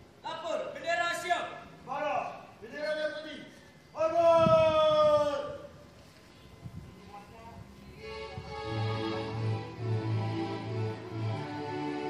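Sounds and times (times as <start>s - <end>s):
faint open-air background: 0.0s - 12.0s
man shouting a command: 0.2s - 5.7s.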